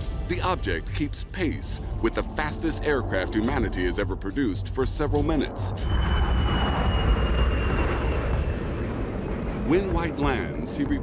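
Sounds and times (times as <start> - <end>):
aircraft engine rumble: 0.0 - 11.0
faint high whine: 5.4 - 11.0.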